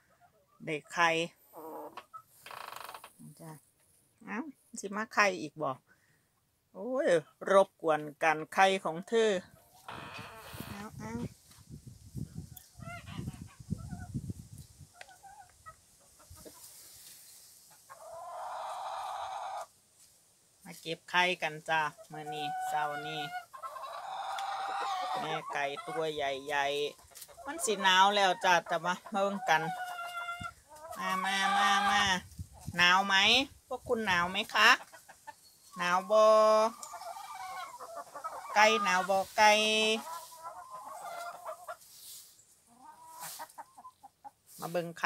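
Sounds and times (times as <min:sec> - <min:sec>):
hens clucking: 0:00.0 - 0:03.1, 0:12.4 - 0:14.2, 0:14.9 - 0:19.7, 0:21.4 - 0:44.8
woman speaking: 0:03.2 - 0:03.6, 0:04.2 - 0:05.8, 0:06.8 - 0:09.4, 0:10.6 - 0:11.3, 0:20.7 - 0:23.3, 0:25.1 - 0:29.8, 0:32.8 - 0:34.8, 0:35.8 - 0:36.8, 0:38.5 - 0:40.0, 0:44.6 - 0:45.0
hen calling: 0:34.4 - 0:41.8.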